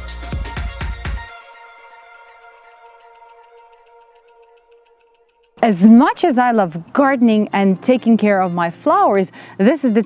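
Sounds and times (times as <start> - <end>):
stopwatch ticking: 1.8 - 9.1.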